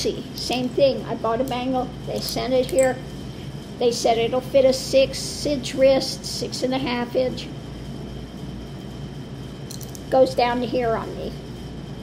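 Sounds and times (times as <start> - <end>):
low room hum: 0.0 - 12.0
bangles clicking together: 9.7 - 10.0.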